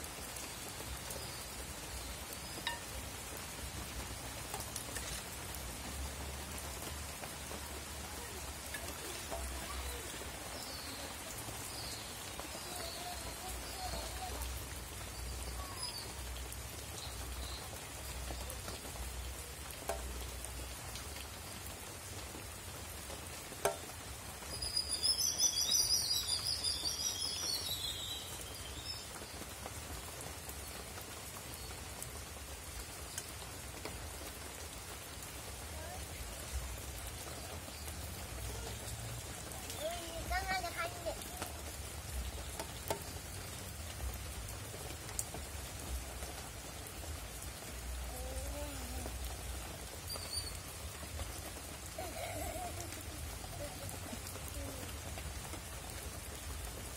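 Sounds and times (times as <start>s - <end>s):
steady outdoor hiss: 0.0s - 56.9s.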